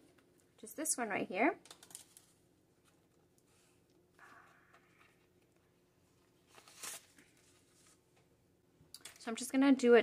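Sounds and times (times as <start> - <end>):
paper banknotes rustling: 6.5 - 8.0.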